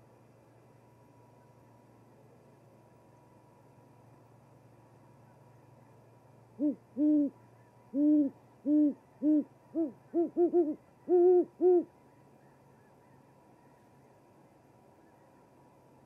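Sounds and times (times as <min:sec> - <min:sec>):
faint electrical hum: 0:00.0 - 0:16.0
owl hooting: 0:06.5 - 0:13.8.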